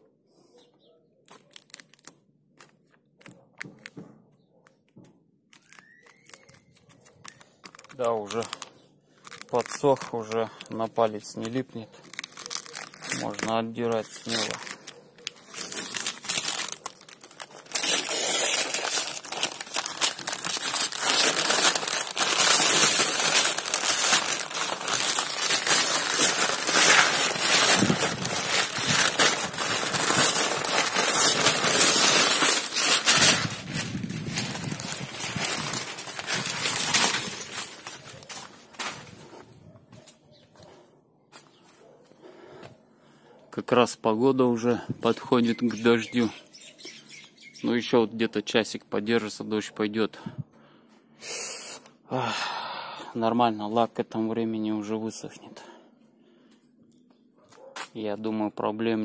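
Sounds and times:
paper and tape peeled and crumpled: 1.3 - 3.9, 5.5 - 40.1.

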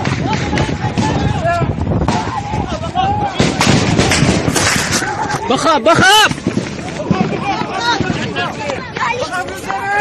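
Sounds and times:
gunshots cracking: 3.4 - 5.2.

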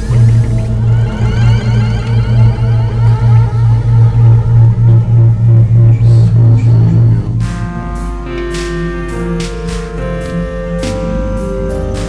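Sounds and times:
pulsing synthesizer bass: 0.0 - 12.0.

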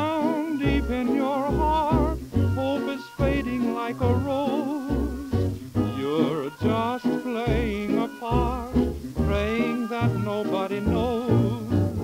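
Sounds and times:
dance band playing from a record: 0.0 - 12.0.

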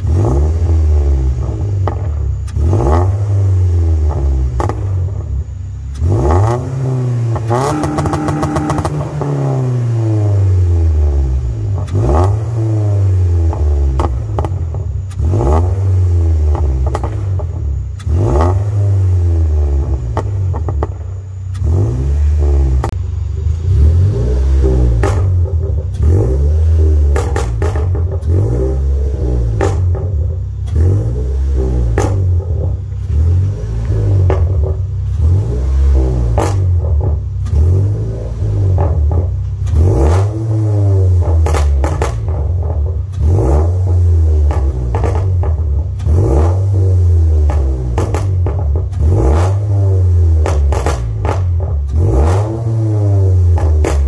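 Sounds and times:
car engine revving: 0.0 - 54.0
exhaust crackles and pops: 0.0 - 54.0.

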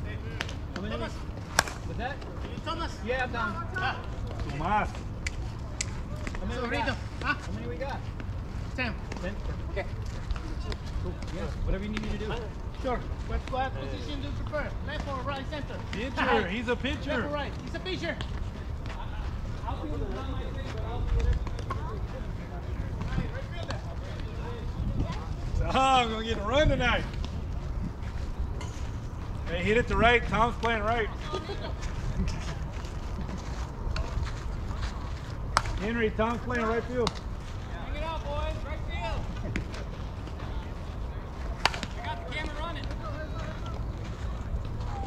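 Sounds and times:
faint voices talking: 0.0 - 45.0
steady low rumble: 17.4 - 45.0.

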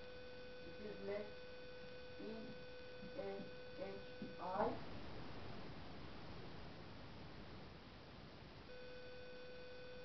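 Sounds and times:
steady electronic tone: 0.0 - 4.9, 8.7 - 10.0
faint steady hiss: 0.0 - 10.0.

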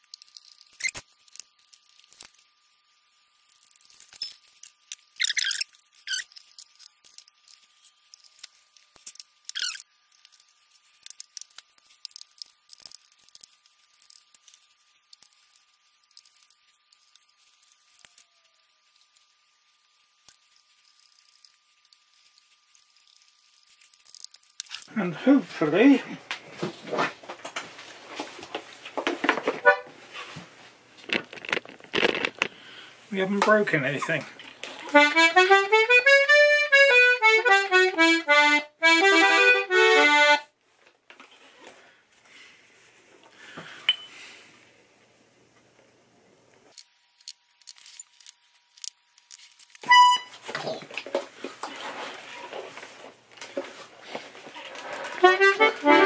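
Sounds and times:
reed note honk: 29.6 - 30.0, 55.2 - 56.0
wooden blocks clicking and knocking: 31.0 - 32.5.

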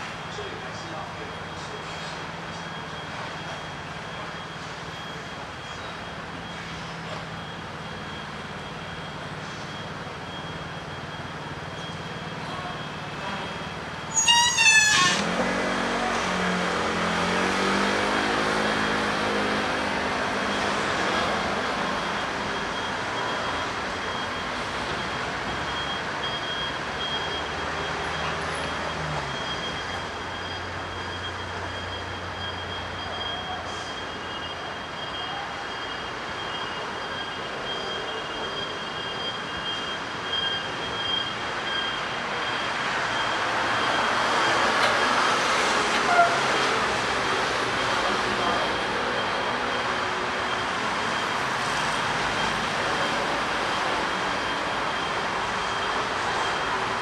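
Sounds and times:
city street traffic: 0.0 - 57.0
wavering high squeal: 14.0 - 15.3.

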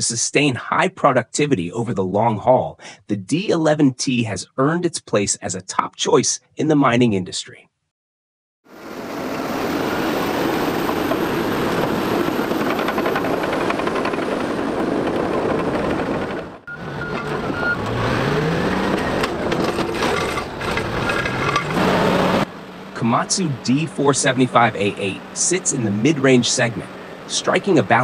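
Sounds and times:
bulldozer engine and tracks rumbling: 8.9 - 28.0
diesel engine revving: 16.6 - 28.0.

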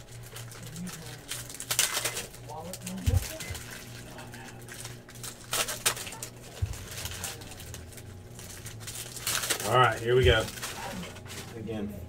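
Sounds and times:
foil wrapper crinkling: 0.0 - 11.9
steady low hum: 0.0 - 12.0.

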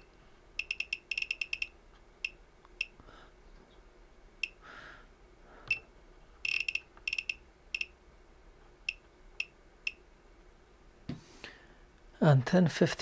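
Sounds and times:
high-pitched buzzer key beeps: 0.0 - 3.0, 5.7 - 8.0.

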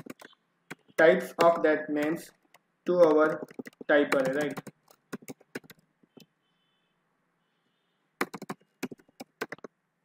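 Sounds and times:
computer keyboard keystrokes: 0.0 - 6.3, 8.2 - 9.7.

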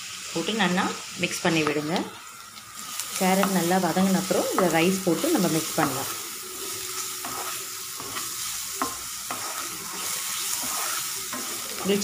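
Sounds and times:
vegetables sizzling in hot oil: 0.0 - 12.0
wooden spatula scraping pan: 4.3 - 12.0.

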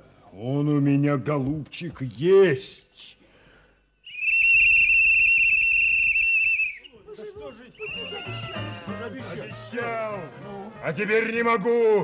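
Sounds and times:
shrill whistle blast: 4.0 - 10.2.

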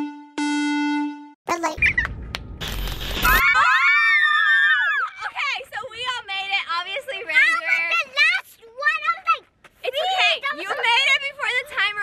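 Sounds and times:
hissing static burst: 2.6 - 3.4.

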